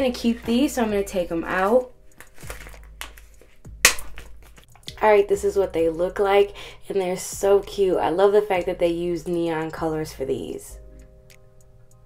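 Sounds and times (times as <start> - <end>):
plastic pouch handling: 1.4 - 4.9.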